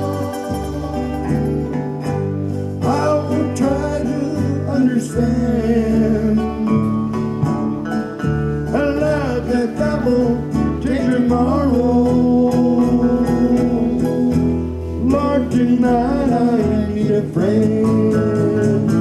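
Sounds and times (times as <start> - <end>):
acoustic guitar: 0.0 - 19.0
electric bass line: 0.0 - 19.0
sliding guitar lead melody: 0.0 - 19.0.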